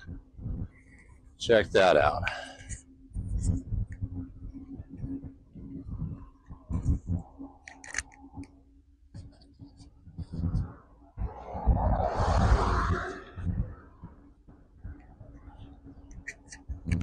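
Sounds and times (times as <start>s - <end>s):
wind rumble on microphone: 0.0s - 17.0s
car passing by: 11.2s - 13.4s.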